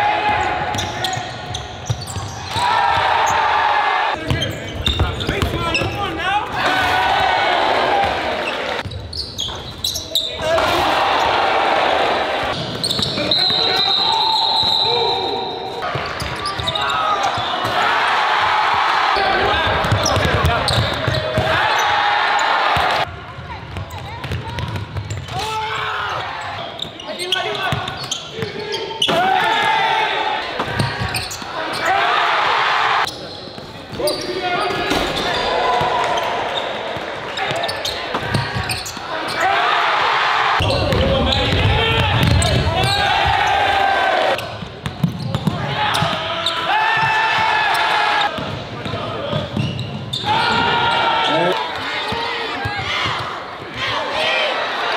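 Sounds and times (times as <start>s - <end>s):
crowd noise: 0.0s - 54.9s.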